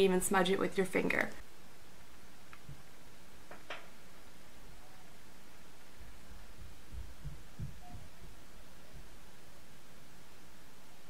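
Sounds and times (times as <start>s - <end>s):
room noise hiss: 0.0s - 11.0s
soft low thumps: 6.4s - 9.3s.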